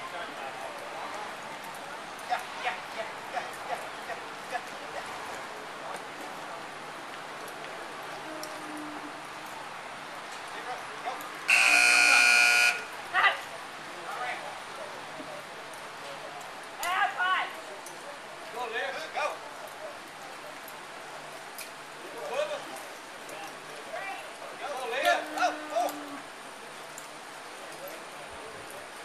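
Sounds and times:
arena buzzer: 11.5 - 12.9
distant shouts: 11.5 - 12.9.

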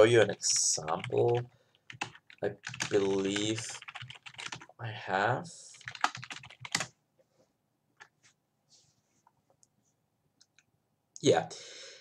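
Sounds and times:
computer keyboard typing: 0.2 - 4.8, 5.8 - 6.9.

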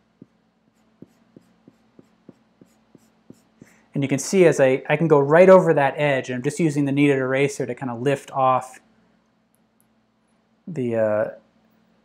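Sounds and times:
eraser rubbing on paper: 0.7 - 3.7.

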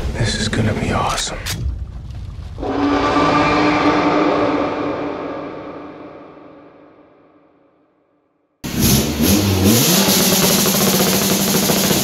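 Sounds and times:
low rumble: 0.0 - 7.6.

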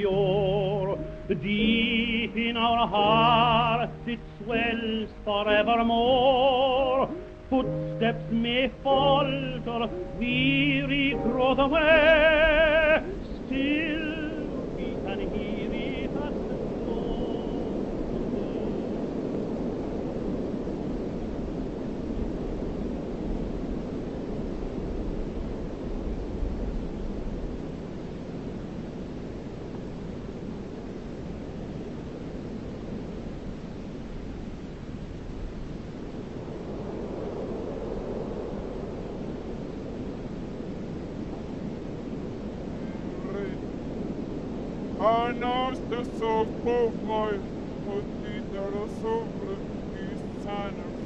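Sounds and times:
low rushing noise drone: 0.0 - 32.8, 33.4 - 51.0.

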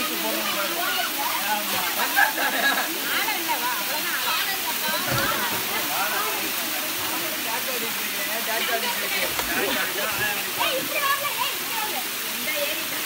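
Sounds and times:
people talking: 0.0 - 13.0
waterfall rushing: 0.0 - 13.0.

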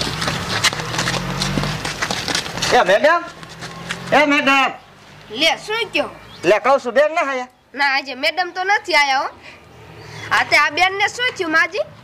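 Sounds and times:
sharp clip-clop knocks: 0.0 - 4.1.

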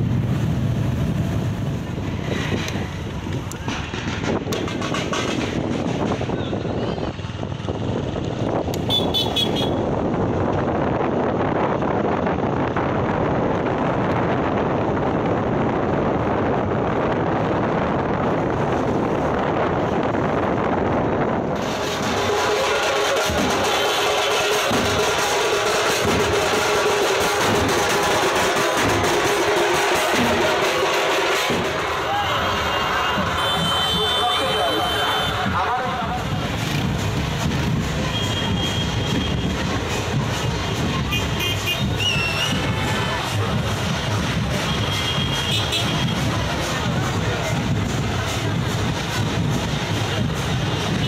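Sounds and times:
wind buffeting microphone: 0.0 - 9.0, 9.6 - 22.3
bass drums beating: 0.0 - 34.2, 35.3 - 51.0.

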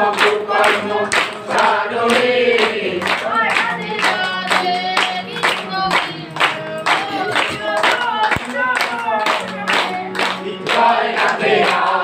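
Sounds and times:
people clapping in rhythm: 0.0 - 12.0
voices singing devotional songs: 0.0 - 12.0.

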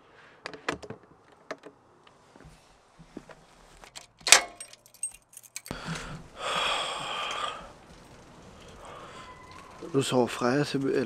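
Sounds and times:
bicycle rustling as handled: 2.2 - 4.2, 4.8 - 11.0
metallic lock snapping open: 3.9 - 5.8
keys jangling: 3.9 - 6.2.

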